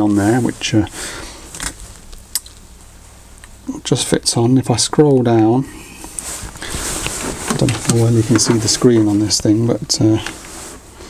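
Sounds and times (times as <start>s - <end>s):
low steady hum: 0.0s - 11.0s
handling rustling: 6.1s - 10.9s.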